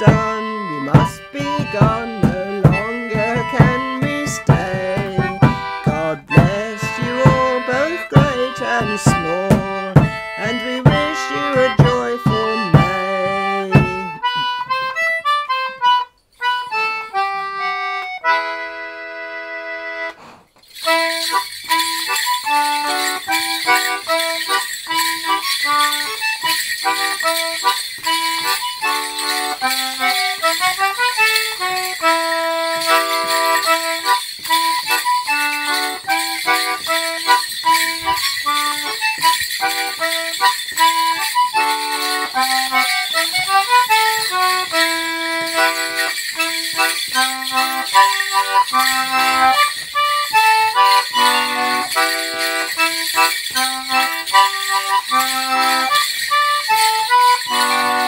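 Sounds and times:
jingling dancer's bells: 0.0 - 18.4, 20.6 - 58.0
concertina playing: 0.0 - 58.0.

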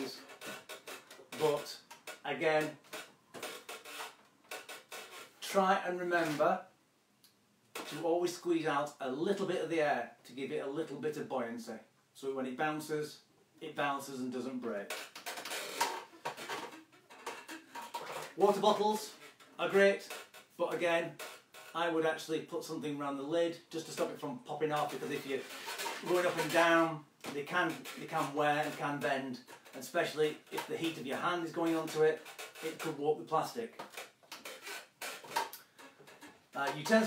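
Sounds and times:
plastic bottles knocking and rustling: 0.0 - 5.4, 14.8 - 21.8, 23.8 - 37.0.

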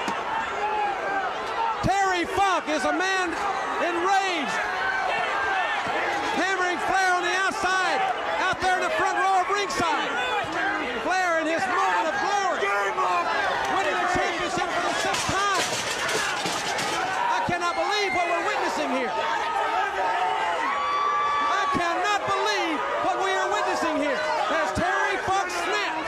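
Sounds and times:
crowd noise: 0.0 - 26.0
men talking and shouting excitedly: 0.0 - 26.0.

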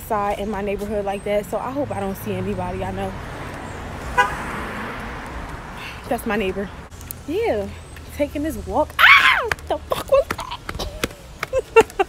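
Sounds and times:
street and traffic noise: 0.0 - 12.0
car horn toot: 4.2 - 4.5.

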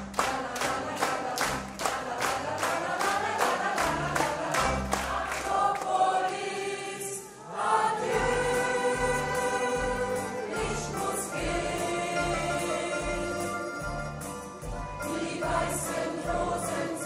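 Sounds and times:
mixed choir singing: 0.0 - 14.0, 15.0 - 17.0.

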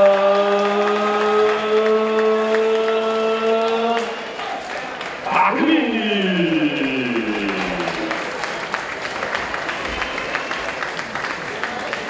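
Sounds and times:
crowd applauding: 0.0 - 12.0
announcer calling through a microphone: 5.3 - 8.2.

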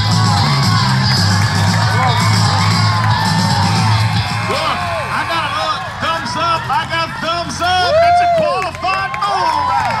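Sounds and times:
people calling out and talking: 0.0 - 9.6.

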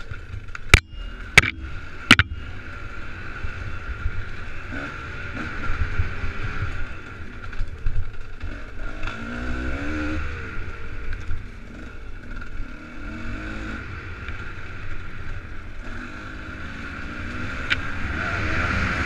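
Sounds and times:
dirt bike engine revving: 8.4 - 10.8, 15.8 - 19.0.

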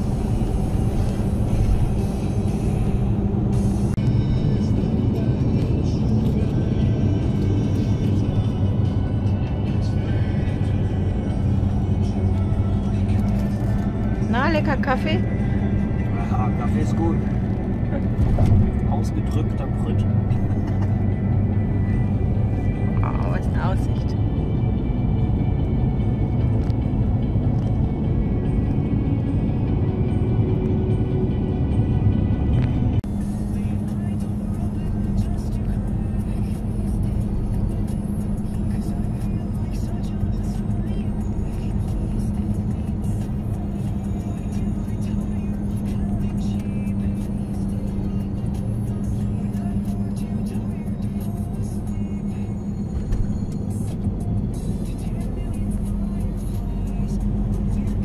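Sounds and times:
music playing: 0.0 - 58.0
road and engine noise in van: 0.0 - 58.0.

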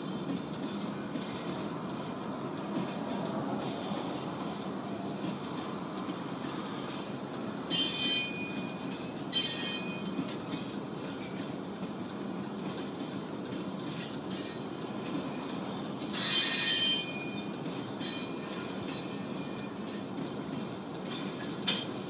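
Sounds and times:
freight train rolling past: 0.0 - 22.0
train wheel clicks: 0.0 - 22.0
high-pitched wheel squeals: 7.7 - 10.2, 14.3 - 14.6, 16.2 - 20.0.

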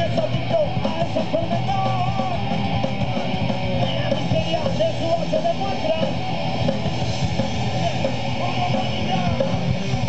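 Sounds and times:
busy drums: 0.0 - 10.0
electric guitars: 0.0 - 10.0.

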